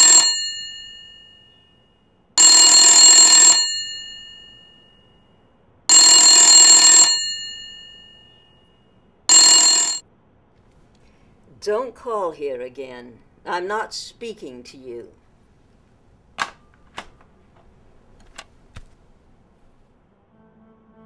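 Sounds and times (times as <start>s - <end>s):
telephone ringing: 0.0s - 1.8s, 2.4s - 5.0s, 5.9s - 8.6s, 9.3s - 10.0s.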